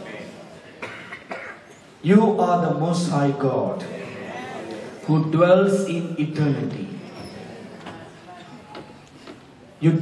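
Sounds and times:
faint murmur of voices: 0:00.0 - 0:10.0
person coughing: 0:00.8 - 0:01.8.

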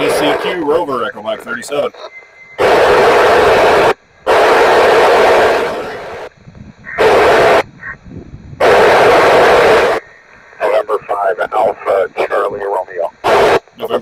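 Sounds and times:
radio static hiss bursts: 0:00.0 - 0:08.0, 0:08.6 - 0:14.0.

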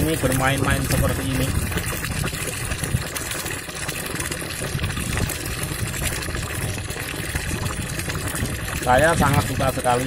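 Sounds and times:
tap water pouring into tub: 0:00.0 - 0:10.0.

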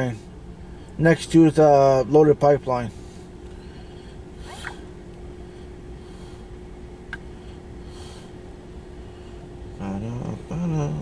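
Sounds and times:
low vehicle cabin hum: 0:00.0 - 0:11.0
zip-like rustle: 0:04.4 - 0:04.8.

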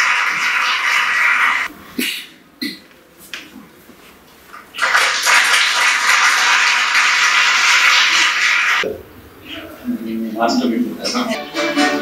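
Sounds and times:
crowd clapping: 0:00.0 - 0:01.7, 0:04.8 - 0:08.8.

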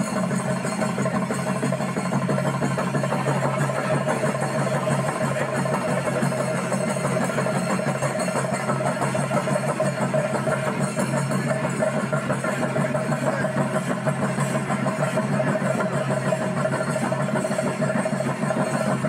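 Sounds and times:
busy percussion: 0:00.0 - 0:19.0.

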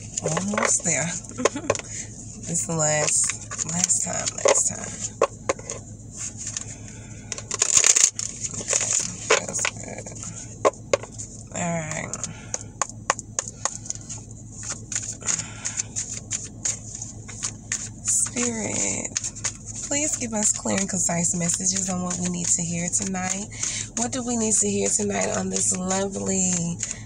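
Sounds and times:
cards being shuffled: 0:00.0 - 0:27.0
person murmuring: 0:00.6 - 0:02.0, 0:11.5 - 0:12.5.

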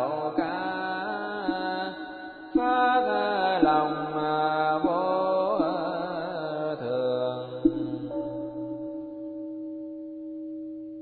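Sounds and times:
chanting voices: 0:00.0 - 0:08.7
bowl bell ringing: 0:07.6 - 0:11.0.

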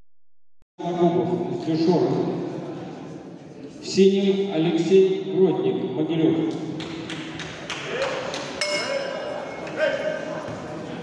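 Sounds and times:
voices in hall: 0:00.8 - 0:11.0
bell ringing: 0:08.6 - 0:09.7.

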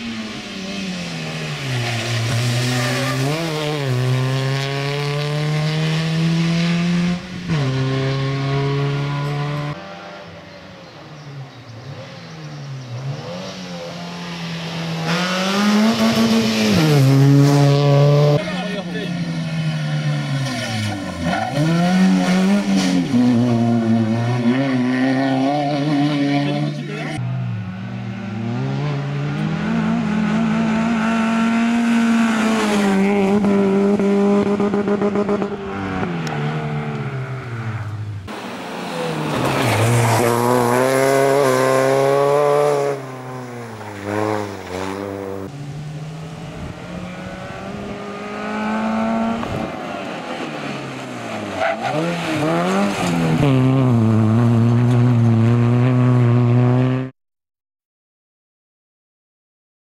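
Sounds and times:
rally car engine revving hard: 0:01.2 - 0:10.2, 0:14.6 - 0:27.2, 0:28.2 - 0:37.1, 0:38.3 - 0:50.6, 0:51.2 - 0:57.1.

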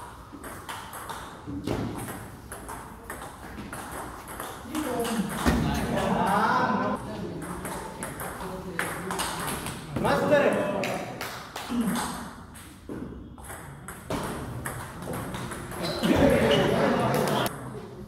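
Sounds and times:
people talking: 0:04.7 - 0:11.1, 0:15.8 - 0:18.0.

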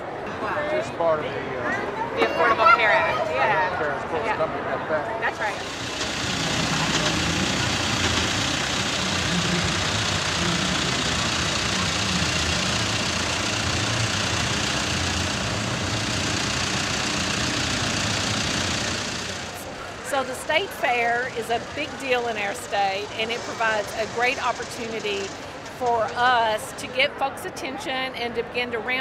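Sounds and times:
outdoor ambience hiss: 0:05.3 - 0:25.9
tractor diesel engine running: 0:05.4 - 0:26.1.

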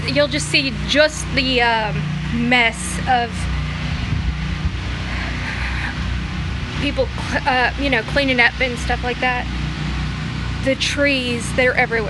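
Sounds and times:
generators humming: 0:00.0 - 0:12.0.

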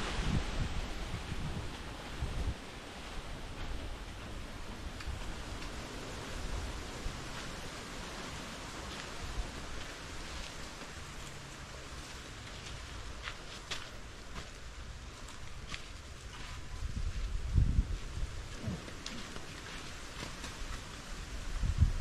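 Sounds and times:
wind buffeting microphone: 0:00.0 - 0:10.2, 0:16.4 - 0:19.3, 0:20.6 - 0:22.0
rustling foliage: 0:00.0 - 0:22.0.

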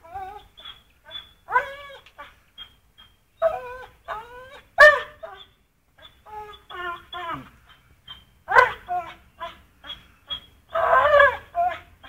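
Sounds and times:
dog whining and yelping: 0:00.0 - 0:12.0.

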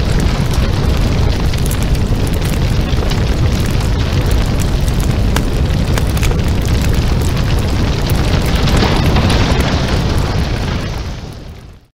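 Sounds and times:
rumbling crackling explosion: 0:00.0 - 0:11.9.

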